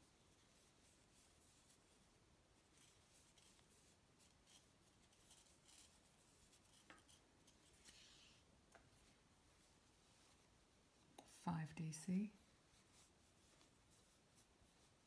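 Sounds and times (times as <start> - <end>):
crochet hook ticks and rustles: 2.7 - 8.0, 10.9 - 11.5.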